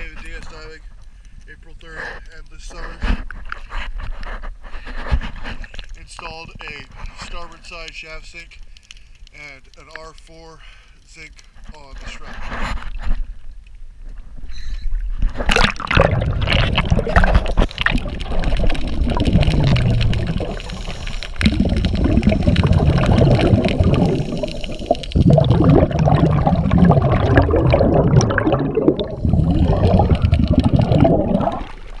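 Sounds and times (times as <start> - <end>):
underwater air bubbles gurgling: 15.4 - 32.0.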